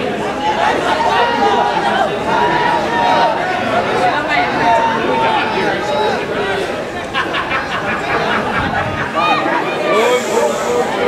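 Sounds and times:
chatter of several voices: 0:00.0 - 0:11.0.

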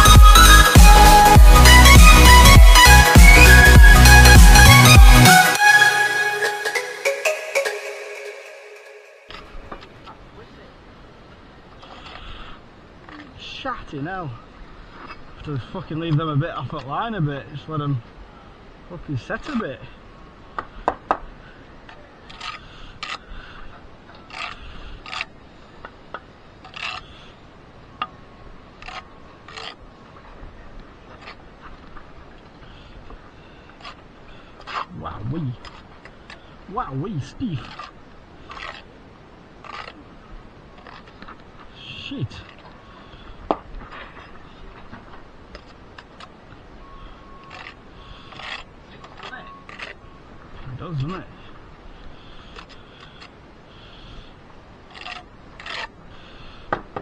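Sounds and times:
trowel scraping mortar: 0:26.6 - 0:27.1, 0:37.2 - 0:39.0, 0:54.9 - 0:56.0.

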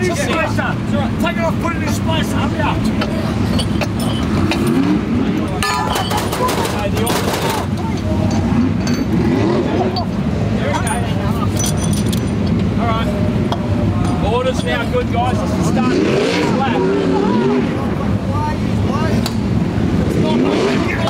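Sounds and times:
vehicle engines running: 0:00.0 - 0:21.0.

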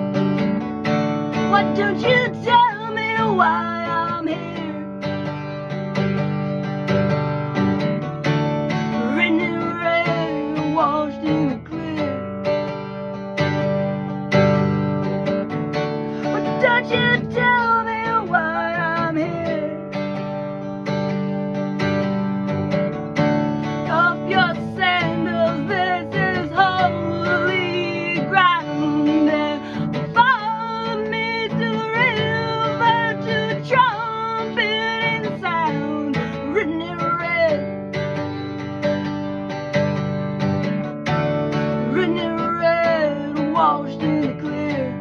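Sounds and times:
woman singing: 0:00.0 - 0:05.8, 0:08.7 - 0:13.8, 0:15.7 - 0:20.4, 0:23.6 - 0:39.1, 0:41.1 - 0:45.0
acoustic guitar strumming: 0:00.0 - 0:45.0.

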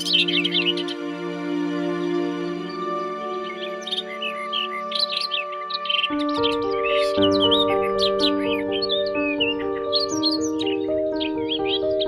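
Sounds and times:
small birds chirping: 0:00.0 - 0:12.0
soft music of held chords: 0:00.0 - 0:12.0.

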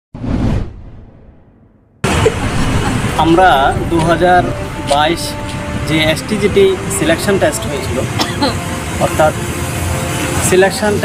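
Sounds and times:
whoosh sound effect: 0:00.2 - 0:04.2.

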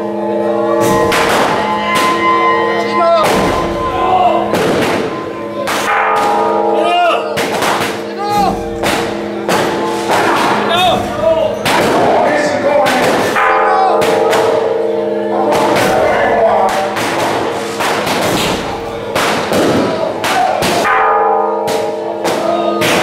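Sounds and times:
crowd voices: 0:00.0 - 0:23.0
steady musical tones: 0:00.0 - 0:23.0
sharp bangs: 0:00.7 - 0:23.0.

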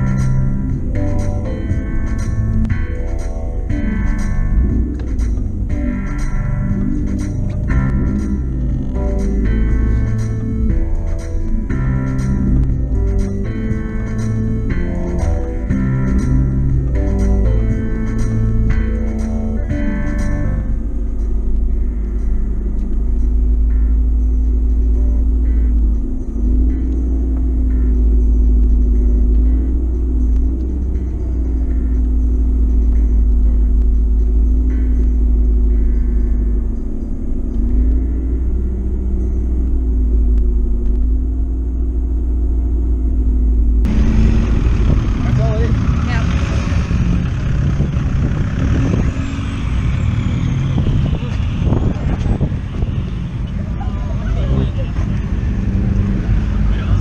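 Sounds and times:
car engine humming: 0:00.0 - 0:57.0
voices: 0:45.0 - 0:46.8, 0:53.3 - 0:55.7, 0:56.5 - 0:57.0.

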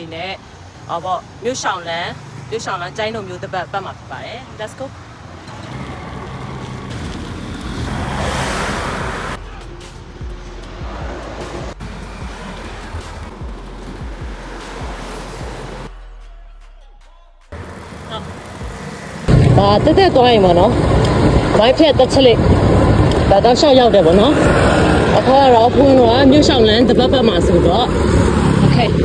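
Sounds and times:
road noise: 0:00.0 - 0:29.0
wind rushing over microphone: 0:19.3 - 0:29.0.

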